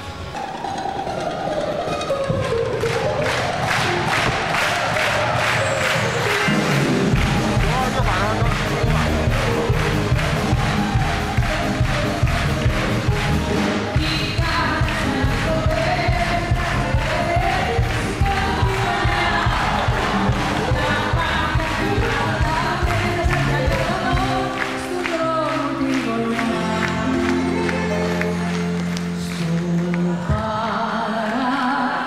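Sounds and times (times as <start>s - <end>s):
live band music: 0.0s - 30.2s
audience noise: 0.0s - 32.0s.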